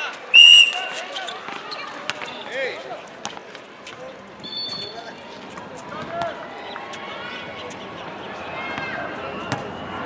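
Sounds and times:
referee's whistle blast: 0.3 - 1.0.

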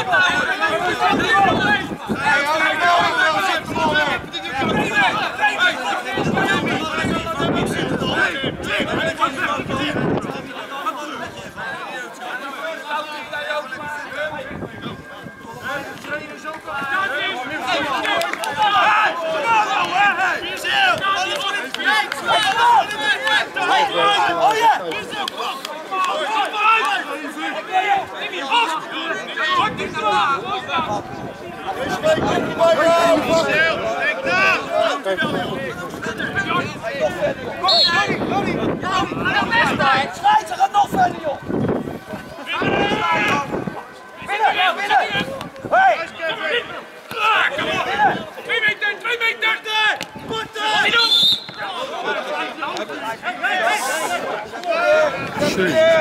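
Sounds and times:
men calling out and talking: 0.0 - 56.0
men chattering: 0.0 - 56.0.

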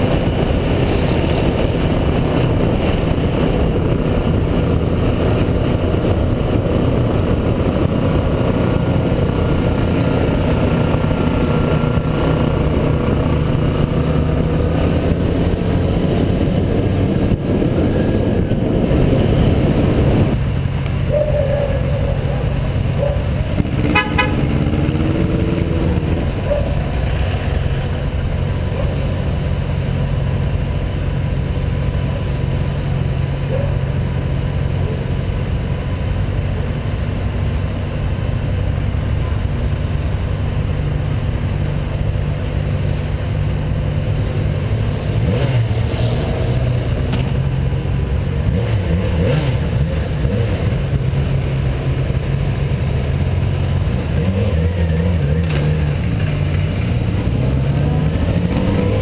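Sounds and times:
motorcycle engine running: 0.0 - 59.0
horn toot: 23.8 - 24.7.

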